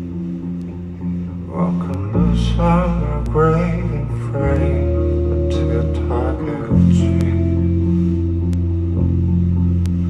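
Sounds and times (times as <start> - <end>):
guitar and bass sustained chord: 0.0 - 10.0.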